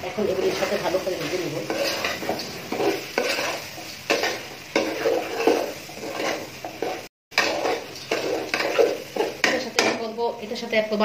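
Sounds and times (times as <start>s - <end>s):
metal spatula scraping a pot: 0.2s - 10.1s.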